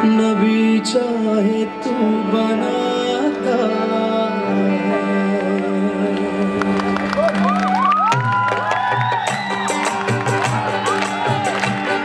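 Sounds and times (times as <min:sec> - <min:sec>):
qawwali music: 0:00.0 - 0:12.0.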